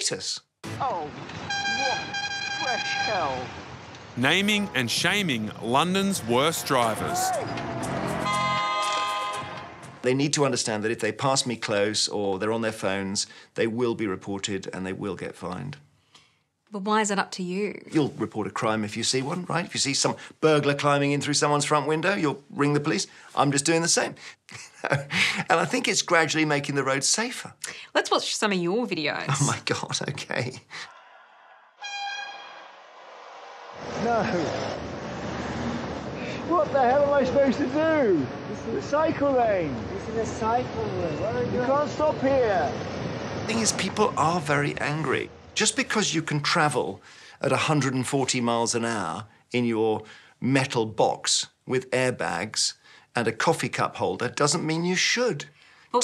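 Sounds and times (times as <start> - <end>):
street noise: 0.6 - 10.1, 31.9 - 46.3
low traffic rumble: 0.7 - 10.3, 32.8 - 47.0
vehicle horn blast: 1.5 - 3.3, 7.8 - 10.0, 31.8 - 32.6.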